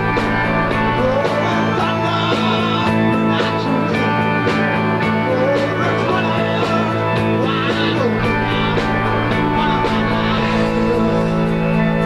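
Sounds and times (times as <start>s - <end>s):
drum hits: 0.0s - 2.8s
electric guitar chords: 0.0s - 12.0s.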